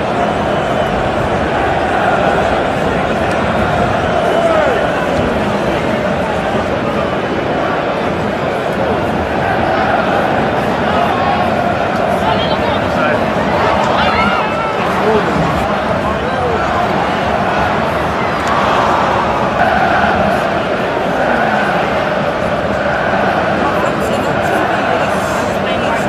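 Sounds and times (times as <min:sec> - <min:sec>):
stadium crowd din: 0:00.0 - 0:26.0.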